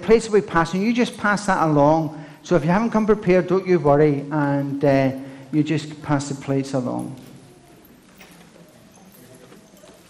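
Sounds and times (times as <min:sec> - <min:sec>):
congregation room noise: 0:00.0 - 0:10.0.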